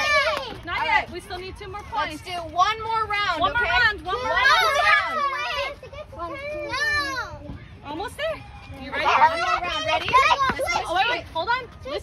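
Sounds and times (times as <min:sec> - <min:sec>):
children calling out: 0:00.0 - 0:00.6, 0:04.0 - 0:07.6.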